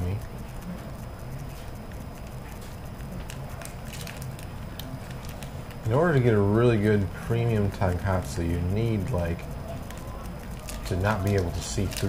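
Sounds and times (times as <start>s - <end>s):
steady low hum: 0.0s - 12.0s
foil packet crinkling: 3.2s - 6.8s, 9.9s - 12.0s.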